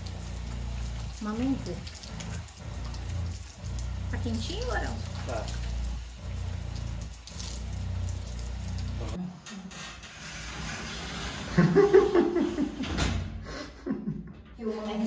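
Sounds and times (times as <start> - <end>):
water spraying from shower head: 0.0 - 9.2.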